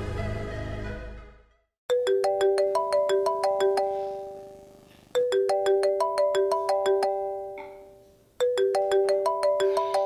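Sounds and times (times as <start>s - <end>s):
phone ringtone chiming: 1.9s - 10.0s.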